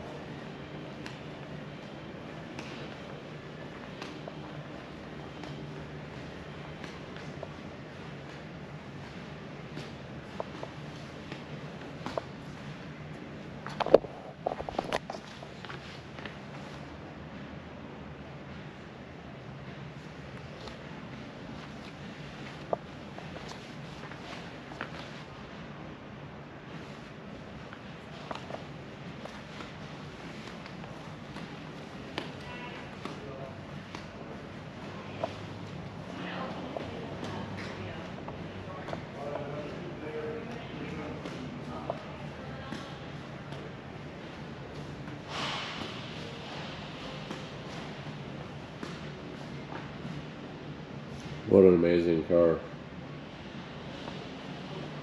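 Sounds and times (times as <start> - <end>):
steady low hum: 0.0 - 55.0
faint voices: 29.4 - 52.7.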